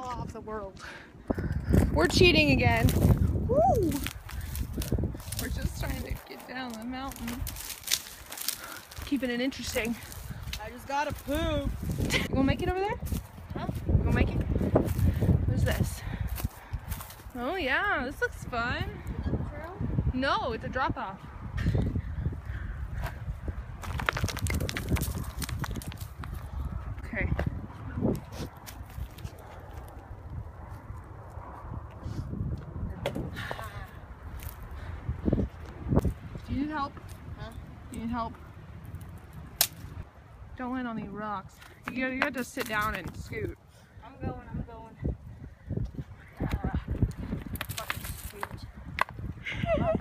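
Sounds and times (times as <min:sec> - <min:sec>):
footsteps crunching on gravel: 0:02.1 - 0:12.2, 0:23.8 - 0:26.5
twigs crackling: 0:02.5 - 0:12.3, 0:23.7 - 0:26.9, 0:28.1 - 0:31.0, 0:35.8 - 0:40.5, 0:41.6 - 0:43.5, 0:46.2 - 0:49.2.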